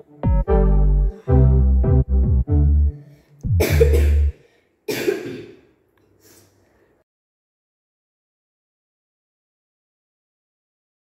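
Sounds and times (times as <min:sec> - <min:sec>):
keyboard music: 0:00.0 - 0:04.3
boy coughing harshly: 0:03.6 - 0:05.7.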